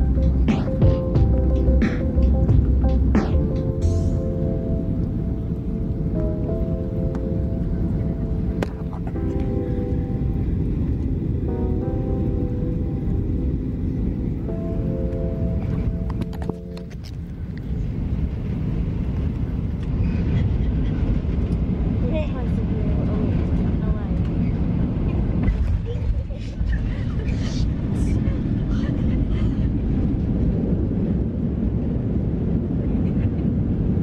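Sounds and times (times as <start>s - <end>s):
held musical notes: 0.0s - 17.6s
airliner rumble in flight: 0.0s - 34.0s
voices inside cabin: 7.2s - 11.4s, 19.2s - 31.4s.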